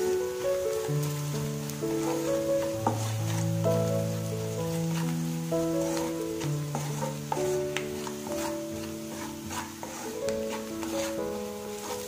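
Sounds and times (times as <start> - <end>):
held chords music: 0.0 - 12.0
masala sizzling in oil: 0.0 - 12.0.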